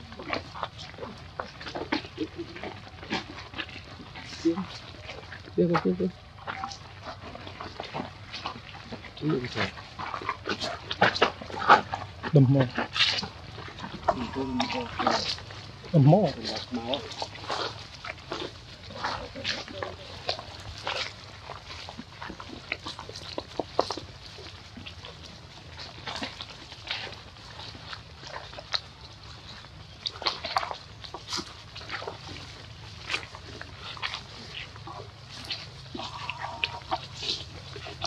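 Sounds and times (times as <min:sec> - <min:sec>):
macaques calling: 0:00.0 - 0:25.2, 0:33.0 - 0:38.0
monkeys squeaking and chirping: 0:06.2 - 0:24.0, 0:29.5 - 0:38.0.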